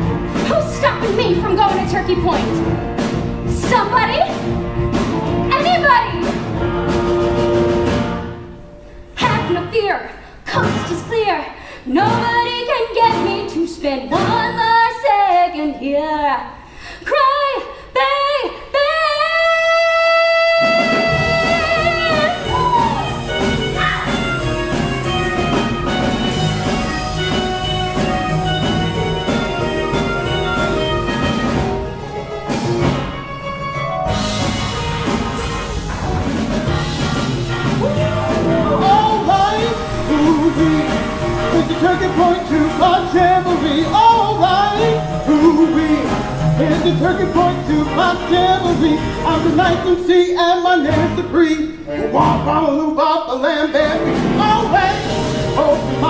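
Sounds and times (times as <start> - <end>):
dance music with brass and drums: 0.0 - 8.6, 20.5 - 50.0, 53.8 - 56.0.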